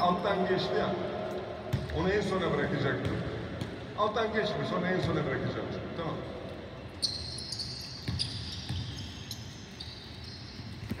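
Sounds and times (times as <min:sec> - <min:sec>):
basketball bouncing on hardwood: 0:01.7 - 0:02.0.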